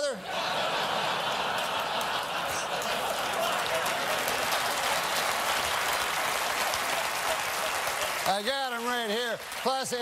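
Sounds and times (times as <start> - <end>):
audience laughing: 0.0 - 5.7, 6.4 - 8.3
audience applauding: 0.5 - 10.0.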